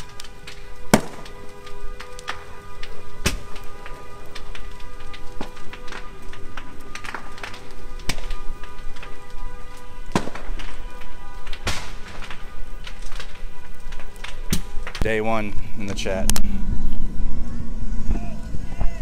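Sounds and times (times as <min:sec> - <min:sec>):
fire crackling and popping: 0:00.0 - 0:19.0
sharp bangs from fire: 0:00.0 - 0:19.0.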